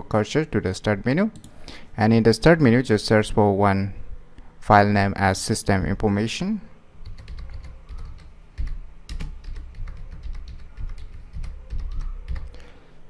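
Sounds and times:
computer keyboard typing: 7.0s - 12.6s.

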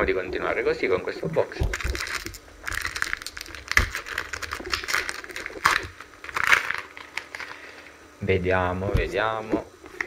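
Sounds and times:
foil wrapper crinkling: 1.7s - 7.9s.

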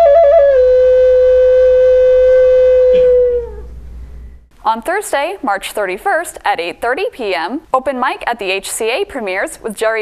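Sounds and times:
wooden flute long note: 0.0s - 4.3s.

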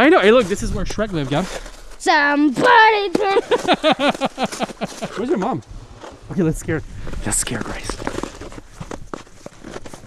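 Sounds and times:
ice skate blades scraping: 0.3s - 6.2s, 7.1s - 10.0s.

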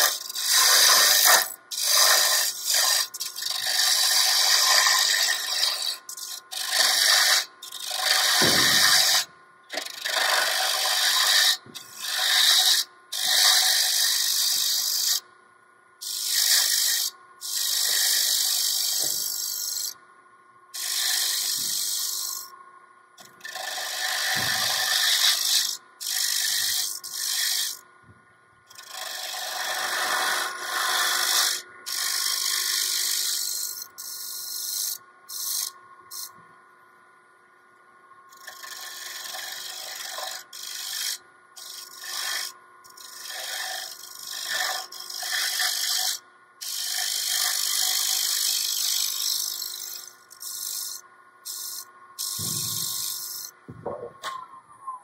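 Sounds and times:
turning tool cutting spinning wood: 0.0s - 15.2s, 16.0s - 20.0s, 20.8s - 22.6s, 23.2s - 27.8s, 28.7s - 36.4s, 38.3s - 54.4s
faint lathe hum: 0.0s - 55.0s.

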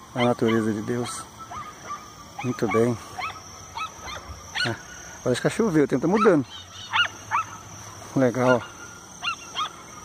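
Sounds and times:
distant animal calls: 0.0s - 10.0s
faint high-pitched hum: 0.0s - 10.0s.

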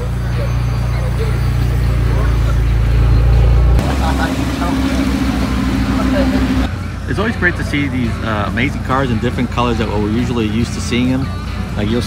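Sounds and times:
car engine idling: 0.0s - 12.0s
faint voices: 0.0s - 12.0s.

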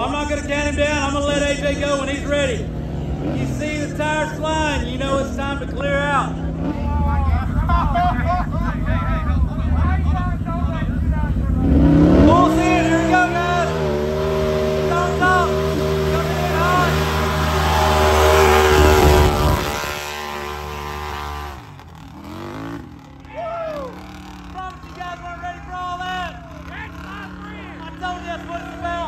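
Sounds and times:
atv engine at high revs: 0.0s - 29.0s
spectators yelling and whooping: 16.2s - 19.7s, 23.3s - 24.1s.

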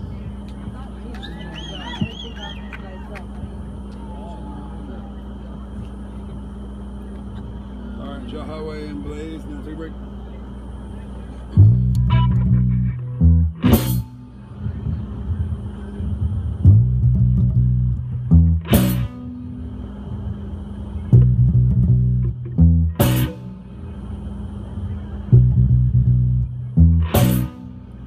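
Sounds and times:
faint voices: 0.0s - 11.9s, 14.0s - 16.8s, 19.6s - 21.2s, 23.3s - 25.5s
steady low hum: 0.0s - 28.0s
electric bass guitar playing: 11.5s - 28.0s.

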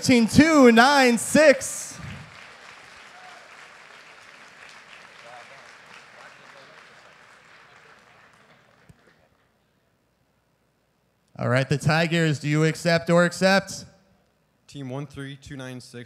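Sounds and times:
audience applauding: 1.0s - 9.5s.

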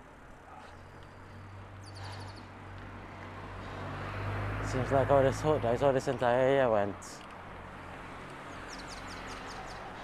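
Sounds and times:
road and wind rumble: 0.0s - 10.0s
bird chirping: 0.6s - 2.5s, 8.5s - 10.0s.

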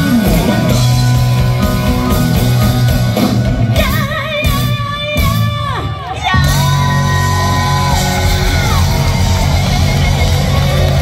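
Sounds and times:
crowd cheering: 0.0s - 4.8s, 5.4s - 11.0s
live rock band: 0.0s - 11.0s.

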